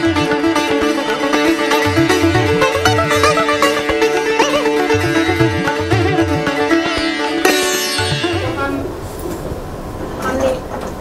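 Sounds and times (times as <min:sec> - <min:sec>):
low rumbling room noise: 0:08.4 - 0:11.0.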